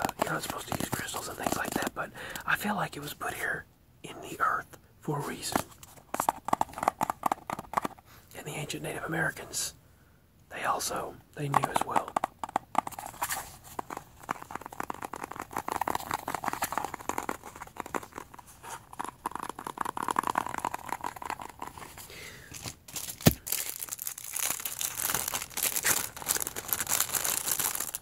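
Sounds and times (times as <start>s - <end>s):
plastic bag crinkling: 0.0s - 2.0s, 13.2s - 28.0s.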